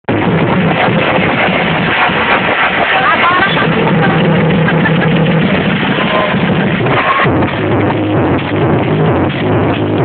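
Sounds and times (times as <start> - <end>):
electronic dance music: 0.0 - 10.0
crowd chatter and shouts: 0.2 - 10.0.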